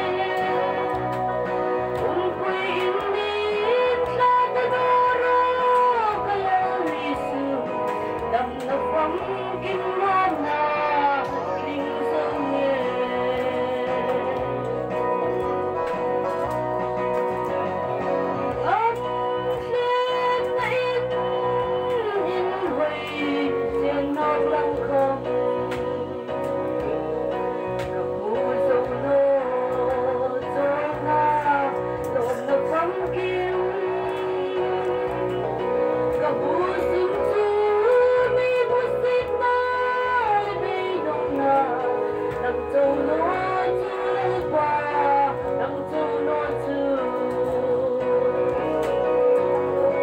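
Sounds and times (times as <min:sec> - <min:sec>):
instrumental accompaniment: 0:00.0 - 0:50.0
woman singing into microphone: 0:00.0 - 0:50.0.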